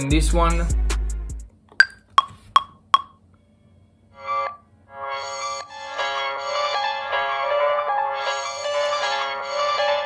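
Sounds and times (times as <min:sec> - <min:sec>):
metronome wood-block clicks: 0:01.7 - 0:03.2.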